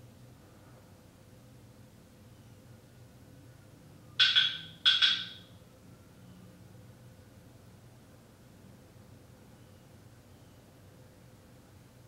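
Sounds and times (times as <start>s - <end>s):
sharp ringing knocks: 4.2s - 5.5s.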